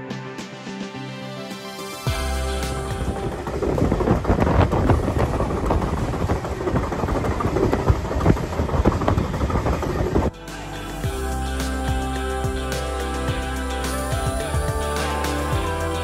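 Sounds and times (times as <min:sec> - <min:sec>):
wind gusting on microphone: 0:02.4 - 0:10.3.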